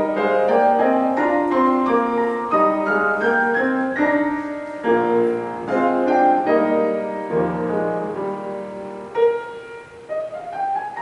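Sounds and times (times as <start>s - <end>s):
piano piece: 0.0s - 11.0s.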